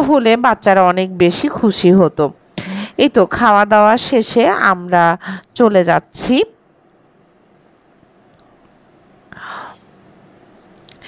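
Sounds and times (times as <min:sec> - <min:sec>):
breathy whisper: 0:09.3 - 0:10.0.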